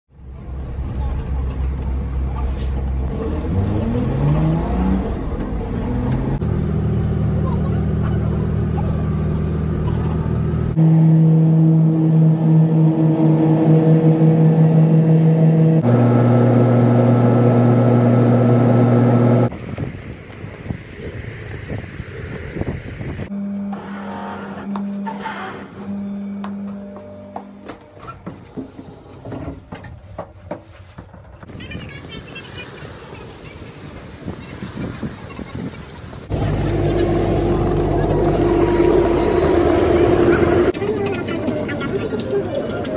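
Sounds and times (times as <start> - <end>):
fast light ticking: 0.1 - 6.2
bus engine accelerating: 0.1 - 19.5, 32.4 - 42.9
vehicle road noise: 0.1 - 42.9
shoe-polishing machine motor humming: 12.7 - 19.5, 36.3 - 40.7.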